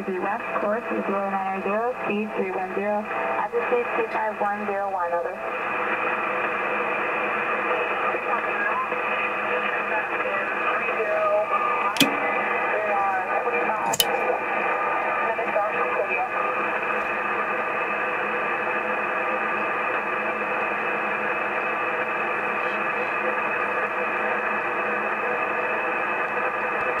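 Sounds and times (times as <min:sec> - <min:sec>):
radio static hiss: 0:00.0 - 0:27.0
sharp static clicks: 0:11.8 - 0:27.0.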